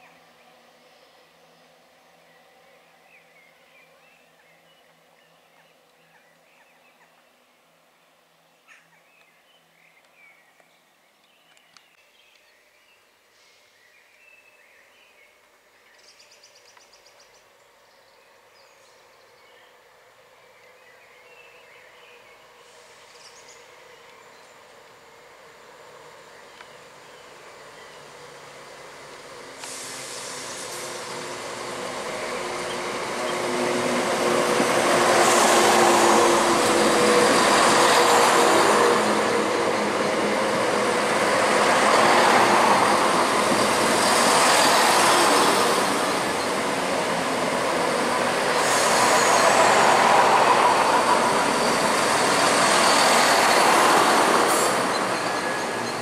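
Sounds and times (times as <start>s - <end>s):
passenger train running past: 21.7s - 56.0s.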